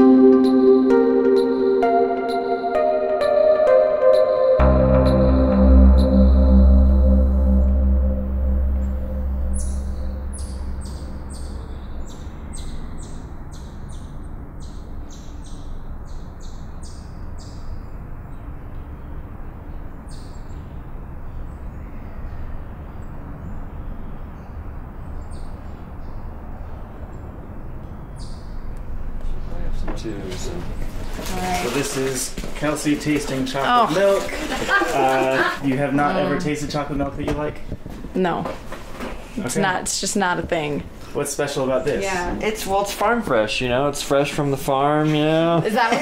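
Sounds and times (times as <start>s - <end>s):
soft ambient music: 0.0s - 13.7s
steady rushing noise: 5.3s - 13.0s
short high bird chirps: 8.6s - 13.2s.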